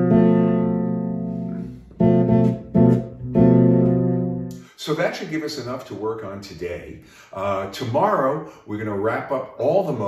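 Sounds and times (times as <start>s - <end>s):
fretless bass chord ringing: 0.0s - 4.6s.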